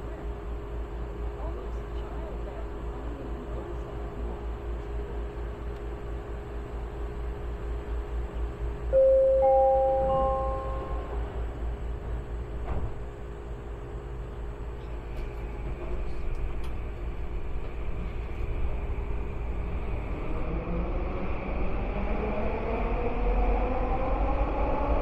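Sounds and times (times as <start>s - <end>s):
train rumbling through tunnel: 0.0s - 25.0s
three-note rising announcement chime: 9.0s - 11.2s.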